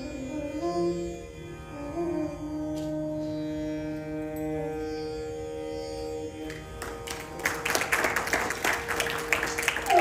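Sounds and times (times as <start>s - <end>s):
audience applause: 6.8s - 10.0s
bamboo flute: 9.8s - 10.0s.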